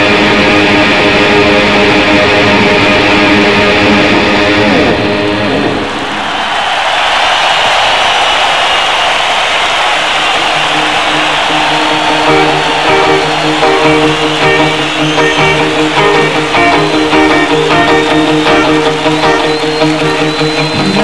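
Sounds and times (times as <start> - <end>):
electric guitar solo: 0.0 - 6.1, 10.4 - 21.0.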